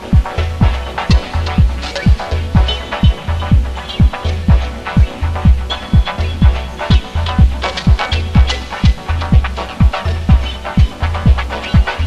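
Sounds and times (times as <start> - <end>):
deep bass note: 0.0 - 12.0
hi-hats: 0.0 - 12.0
kick drum: 0.1 - 12.0.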